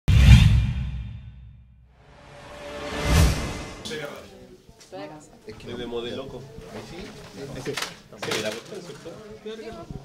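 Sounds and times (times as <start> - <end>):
whoosh: 0.1 - 4.1.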